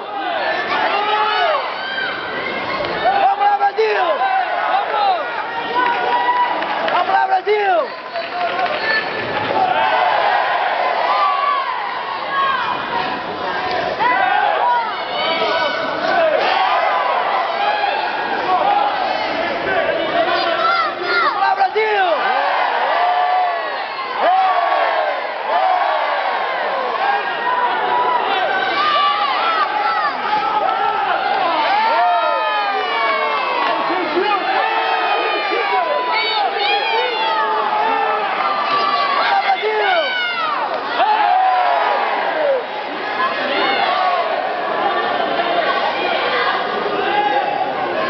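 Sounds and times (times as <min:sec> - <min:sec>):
crowd shouting and cheering: 0:00.0 - 0:48.0.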